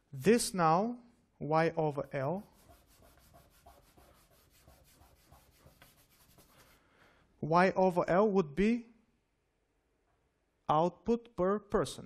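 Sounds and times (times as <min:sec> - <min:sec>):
handwriting scratching on a board: 0:02.4 - 0:06.8.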